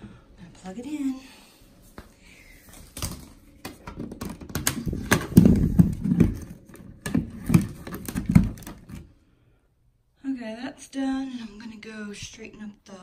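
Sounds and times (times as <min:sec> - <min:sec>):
vacuum cord clicks and knocks: 0:03.0 - 0:09.1.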